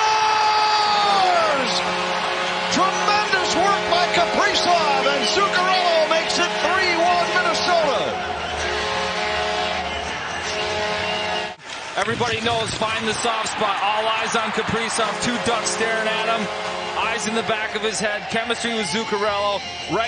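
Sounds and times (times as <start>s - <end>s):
crowd cheering and shouting: 0.0s - 20.0s
goal horn: 1.0s - 11.6s, 14.9s - 17.7s.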